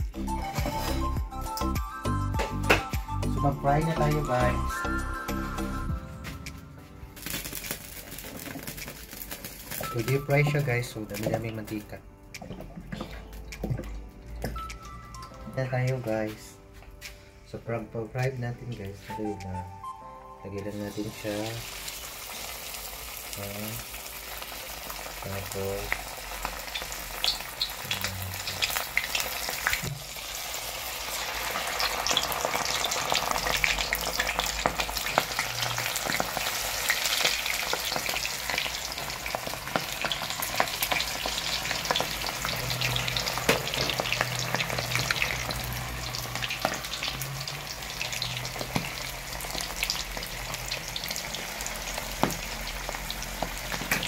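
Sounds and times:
food deep-frying in oil: 0:07.2 - 0:11.9, 0:20.9 - 0:54.0.

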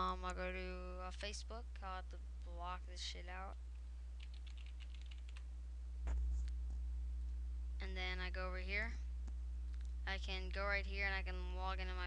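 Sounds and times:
low electrical hum: 0:00.0 - 0:12.0
computer keyboard typing: 0:04.2 - 0:05.4
dull thump: 0:06.0 - 0:06.4.

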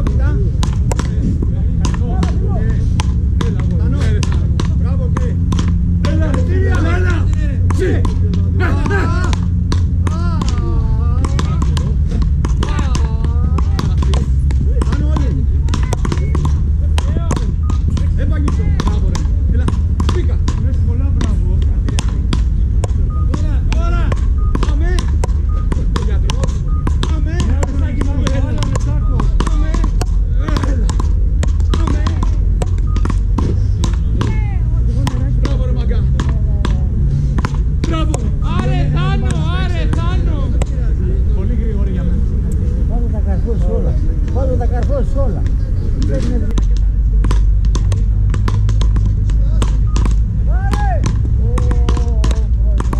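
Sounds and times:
wooden rackets hitting ball: 0:00.0 - 0:41.0, 0:44.2 - 0:52.9
people talking: 0:00.0 - 0:48.6, 0:49.2 - 0:52.9
steady low rumble: 0:00.0 - 0:52.9.

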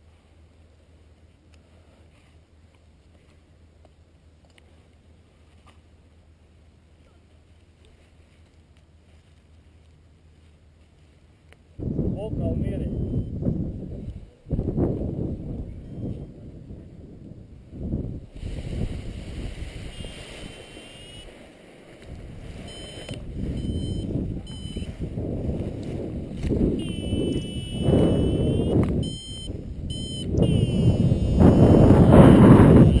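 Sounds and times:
wind buffeting microphone: 0:11.8 - 0:20.8, 0:22.0 - 0:33.0
variometer high electronic beeps: 0:12.9 - 0:13.4, 0:19.9 - 0:21.3, 0:22.7 - 0:25.0, 0:26.7 - 0:33.0.

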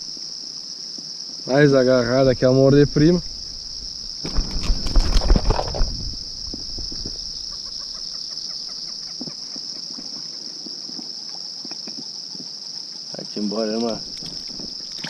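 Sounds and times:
high-pitched insect chorus: 0:00.0 - 0:15.0
close rustling and knocking: 0:03.2 - 0:07.8.

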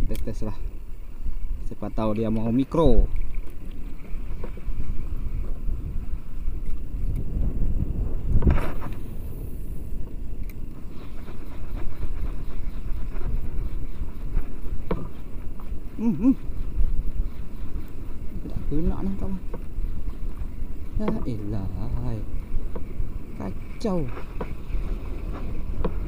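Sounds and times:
wind on microphone: 0:00.0 - 0:26.0
water lapping at boat hull: 0:02.0 - 0:07.3, 0:10.4 - 0:26.0.

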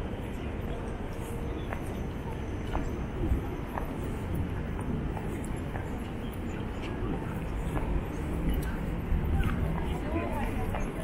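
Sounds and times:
faint voices: 0:00.0 - 0:11.0
low rumble of traffic: 0:00.0 - 0:11.0.

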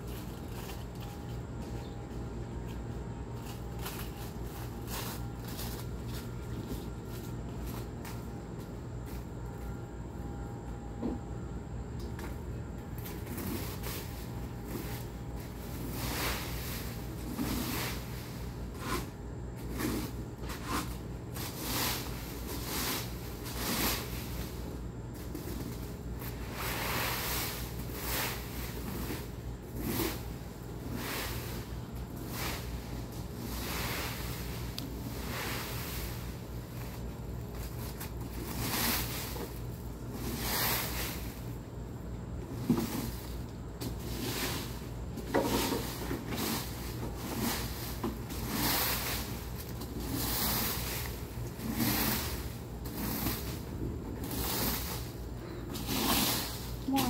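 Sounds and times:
rake scraping through dry leaves: 0:00.0 - 0:02.0, 0:02.7 - 0:08.3, 0:13.0 - 0:41.6, 0:42.4 - 0:57.0
steady low hum: 0:00.0 - 0:57.0.

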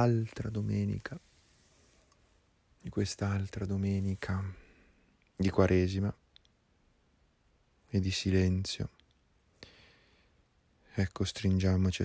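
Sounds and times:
man breathing in: 0:04.5 - 0:05.2, 0:09.6 - 0:10.4.

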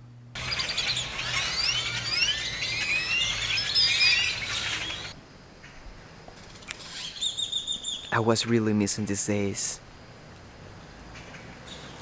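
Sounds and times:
flock of birds chirping: 0:00.4 - 0:05.2, 0:06.6 - 0:08.3, 0:11.2 - 0:12.0.

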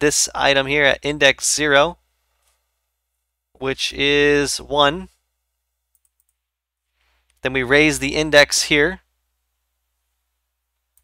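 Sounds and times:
faint computer clicks: 0:05.9 - 0:06.4.

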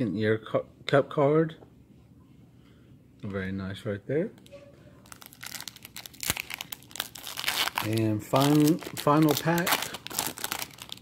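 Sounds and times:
foil wrapper crinkling: 0:05.0 - 0:11.0.

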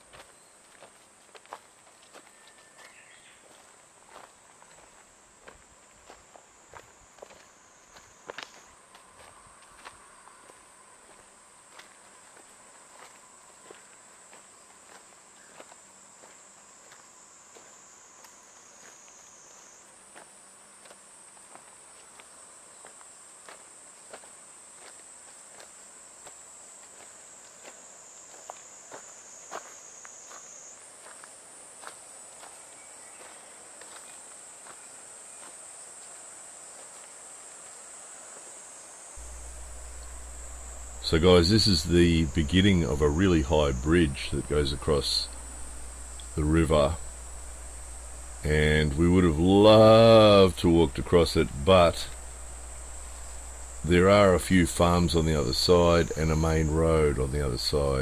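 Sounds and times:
high-pitched insect drone: 0:38.7 - 0:58.0
footsteps crunching on gravel and leaves: 0:39.2 - 0:58.0.

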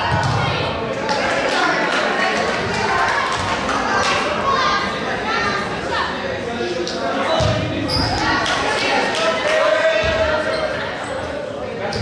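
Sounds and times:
voices talking in echoing gym: 0:00.0 - 0:12.0.

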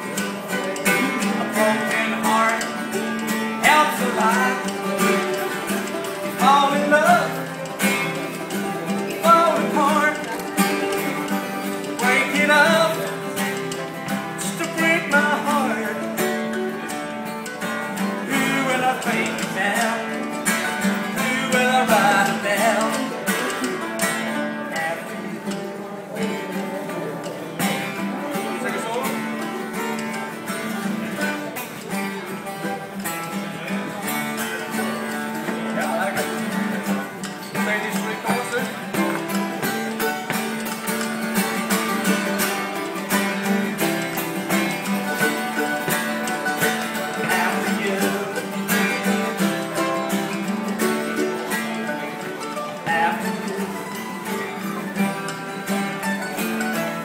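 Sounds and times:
mandolin melody: 0:00.0 - 0:57.0
strummed acoustic guitars: 0:00.0 - 0:57.0
spoons clicking rhythm: 0:00.1 - 0:24.9, 0:34.4 - 0:56.9.

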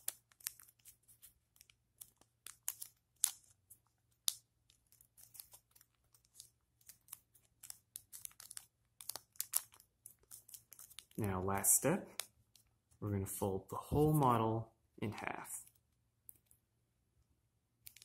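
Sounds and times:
paper being folded and creased: 0:00.0 - 0:11.4.

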